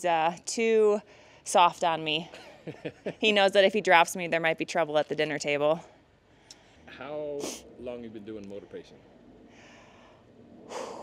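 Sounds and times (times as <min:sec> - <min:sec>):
woman speaking: 0:00.0 - 0:02.4, 0:03.2 - 0:05.8
background hiss: 0:00.9 - 0:04.0, 0:05.6 - 0:11.0.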